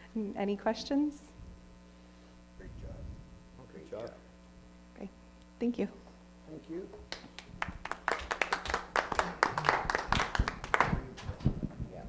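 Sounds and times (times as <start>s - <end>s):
small group applauding: 7.1s - 11.3s.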